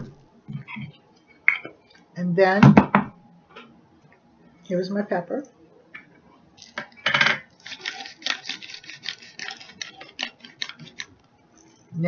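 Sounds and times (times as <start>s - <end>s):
pepper dispenser clatter: 6.6s - 11.1s.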